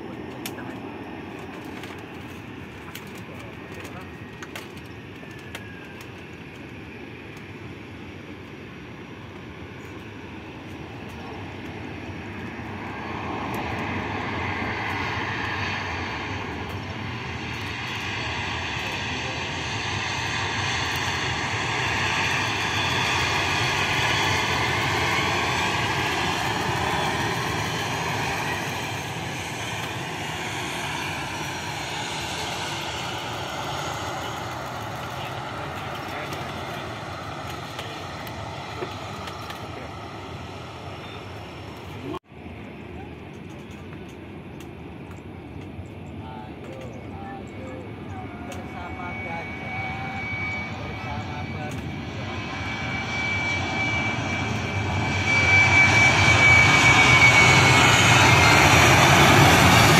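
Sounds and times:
jet airliner passing: 0:00.0 - 0:59.9.

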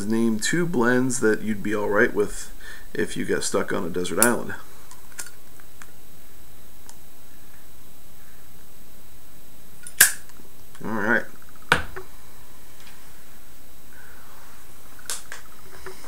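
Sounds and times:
wavering hum: 0:00.0 - 0:16.0.

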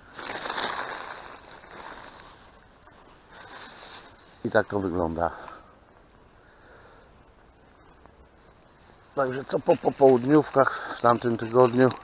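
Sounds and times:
plastic wrap crinkling: 0:00.0 - 0:05.3, 0:07.8 - 0:12.0.

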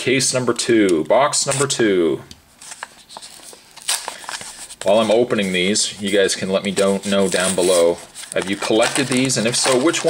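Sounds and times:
card scraping: 0:02.6 - 0:10.0.

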